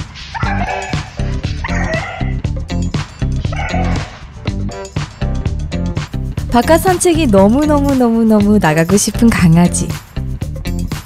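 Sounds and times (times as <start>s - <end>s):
music with steady beat: 0.0s - 11.0s
dog whining and yipping: 0.4s - 2.4s, 3.6s - 4.1s.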